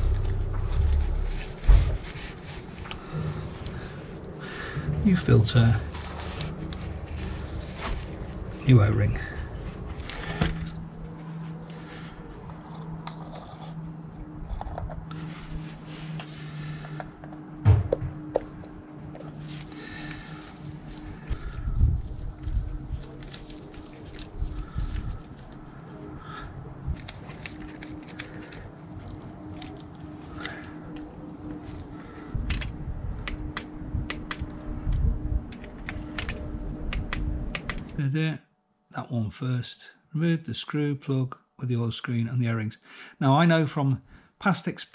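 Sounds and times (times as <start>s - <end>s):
cloth rubbing: 0.0s - 4.2s, 5.0s - 8.8s
steady low hum: 0.0s - 38.1s.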